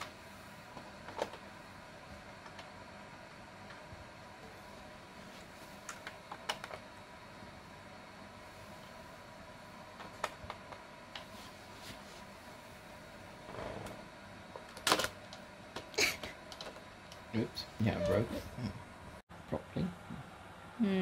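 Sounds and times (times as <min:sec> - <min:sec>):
faint steady hum: 0:00.0 - 0:21.0
soft brushing rush: 0:11.2 - 0:12.9.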